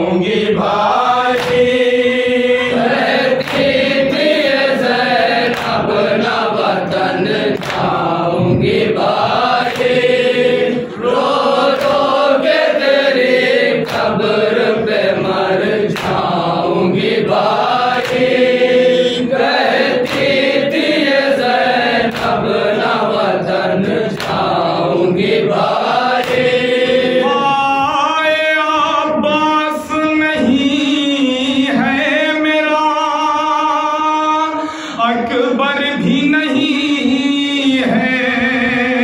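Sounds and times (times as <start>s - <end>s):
men singing in chorus: 0.0s - 39.0s
hands slapping chests: 1.3s - 1.7s, 3.4s - 3.9s, 5.4s - 6.0s, 7.2s - 10.2s, 11.2s - 12.8s, 13.7s - 14.3s, 15.9s - 18.6s, 19.6s - 21.2s, 21.9s - 22.6s, 24.1s - 24.6s, 25.2s - 26.6s
man chanting a lament: 26.4s - 39.0s.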